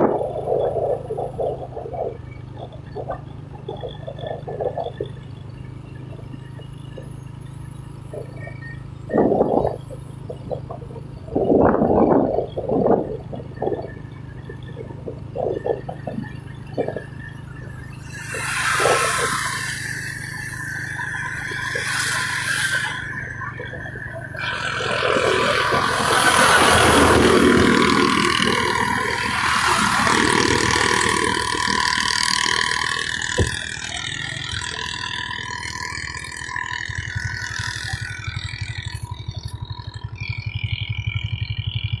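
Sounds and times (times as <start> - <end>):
road and wind noise: 0.0 - 42.0
vehicle engine running: 0.0 - 42.0.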